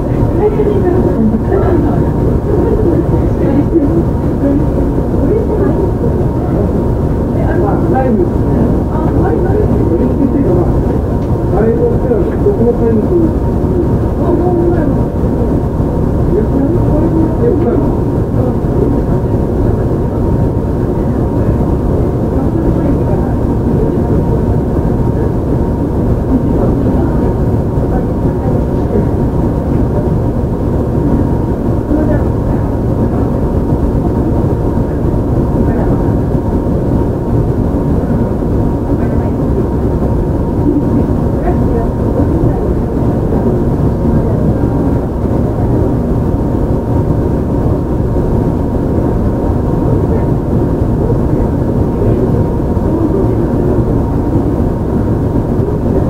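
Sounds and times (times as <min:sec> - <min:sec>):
faint steady hum: 0:00.0 - 0:56.0.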